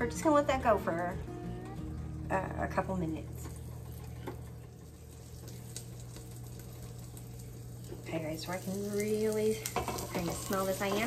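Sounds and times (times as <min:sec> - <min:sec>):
muffled sizzle with crackles: 0:00.0 - 0:11.0
steady low hum: 0:00.0 - 0:11.0.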